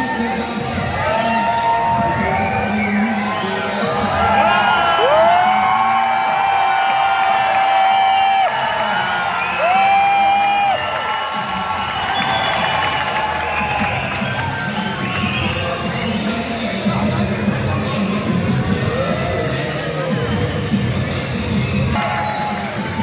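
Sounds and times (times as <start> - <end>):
audience cheering and whooping: 0.0 - 16.5, 21.9 - 23.0
music over public address system: 0.0 - 23.0.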